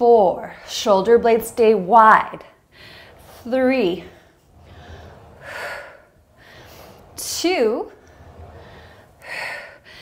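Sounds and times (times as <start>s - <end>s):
woman breathing heavily: 2.6s - 7.2s, 8.0s - 10.0s.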